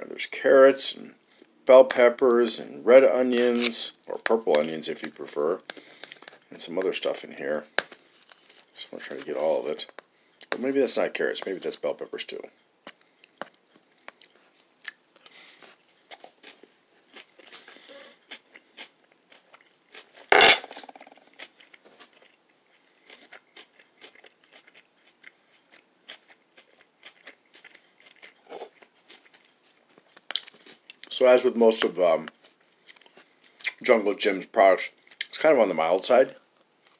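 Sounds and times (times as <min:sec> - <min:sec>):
person chewing crunchy food: 0:05.6 - 0:06.5, 0:12.8 - 0:31.1, 0:32.3 - 0:33.8.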